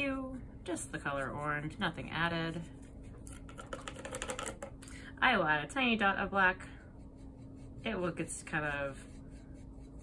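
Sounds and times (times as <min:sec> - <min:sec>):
faint steady hum: 0:00.0 - 0:10.0
paintbrush clicks and taps: 0:03.1 - 0:04.8.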